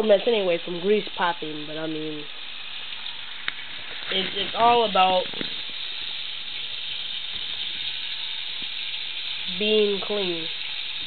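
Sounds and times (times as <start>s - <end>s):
food frying in hot grease: 0.0s - 11.0s.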